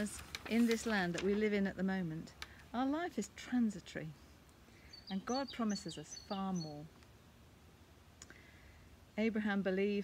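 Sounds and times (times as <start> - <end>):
faint click: 8.2 - 8.4.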